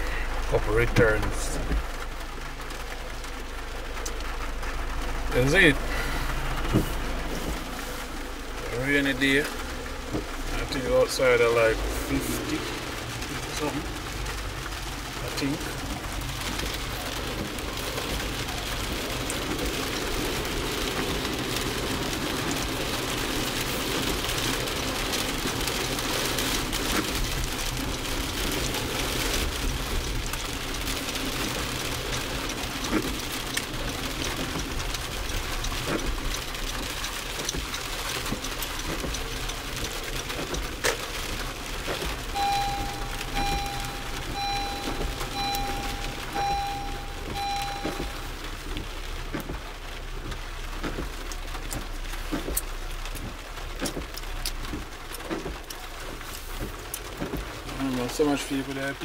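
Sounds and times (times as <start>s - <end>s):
car driving on wet road: 0.0s - 59.0s
heavy rain on car roof: 0.0s - 59.0s
electronic beeps: 42.4s - 48.3s.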